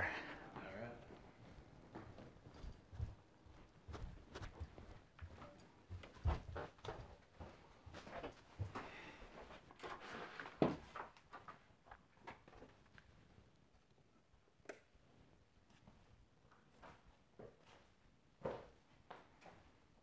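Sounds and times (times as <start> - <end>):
footsteps on carpeted stairs: 0.4 - 10.0.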